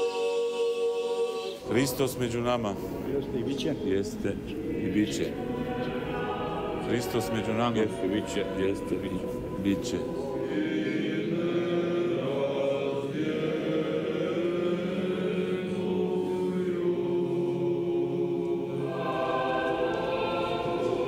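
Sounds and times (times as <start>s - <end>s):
choir chanting held notes: 0.0s - 21.0s.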